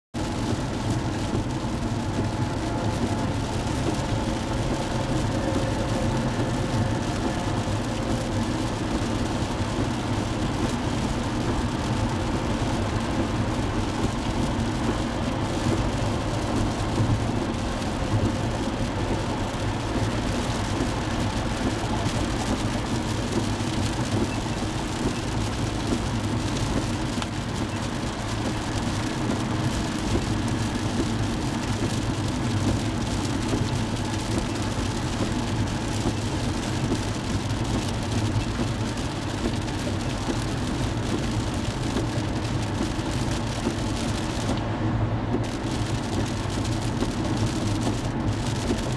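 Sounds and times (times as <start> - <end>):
rain on car: 0.1 - 48.9
engine low hum: 0.2 - 48.9
tyres on wet pavement: 0.2 - 48.9.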